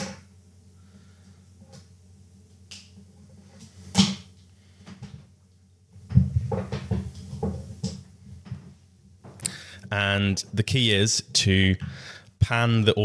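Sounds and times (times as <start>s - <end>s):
cable handling rubbing and knocking: 6.0s - 9.4s.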